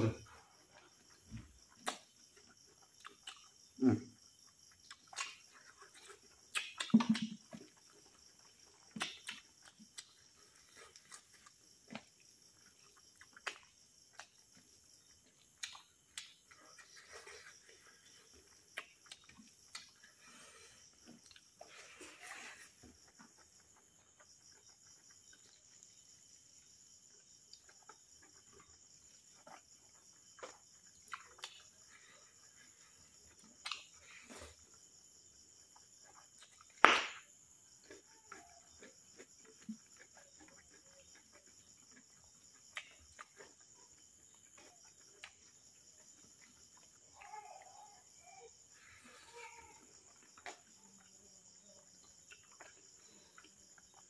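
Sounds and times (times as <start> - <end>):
crickets chirring: 0.0 - 54.0
mouth smacks and chewing: 0.8 - 3.7, 4.5 - 36.8, 37.4 - 47.2, 49.9 - 54.0.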